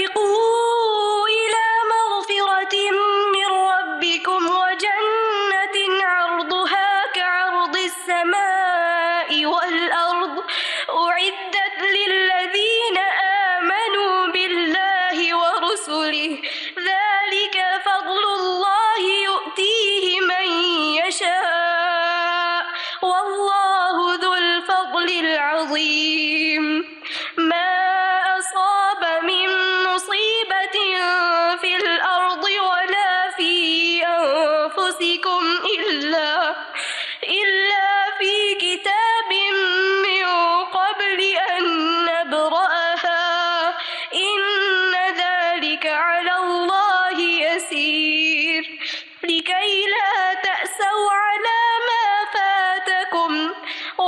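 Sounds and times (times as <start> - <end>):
woman chanting melodically: 0.0 - 54.0
short breath: 10.4 - 10.9, 16.4 - 16.8, 22.7 - 23.0, 27.0 - 27.4, 36.6 - 37.2, 43.8 - 44.1, 48.7 - 49.2, 53.6 - 54.0.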